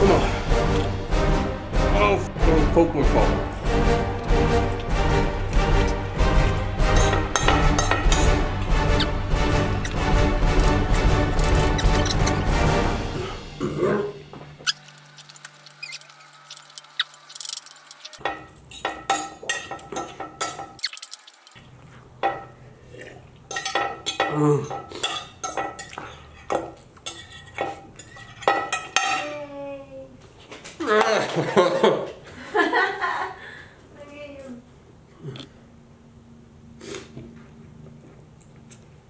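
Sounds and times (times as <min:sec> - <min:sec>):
metal fork scraping a plate: 0:14.7 - 0:18.8, 0:25.0 - 0:29.0.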